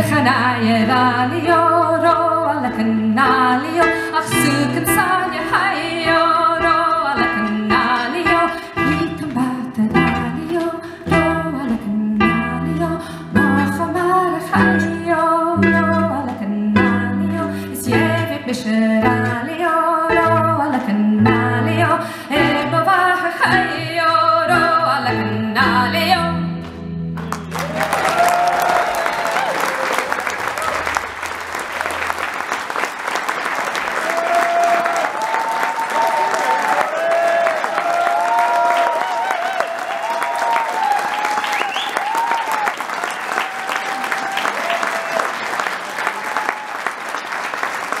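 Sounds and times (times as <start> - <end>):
person singing: 0.0 - 26.8
harp: 1.4 - 27.2
audience applauding: 27.2 - 48.0
cheers and whoops: 27.4 - 31.0, 33.9 - 47.0.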